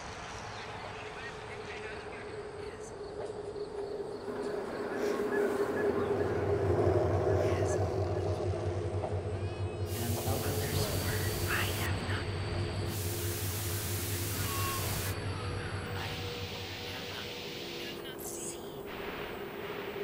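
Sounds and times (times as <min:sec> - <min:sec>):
indistinct voices: 0:01.0 - 0:19.0
sustained low drone: 0:02.0 - 0:20.0
burst of hiss: 0:12.9 - 0:15.2.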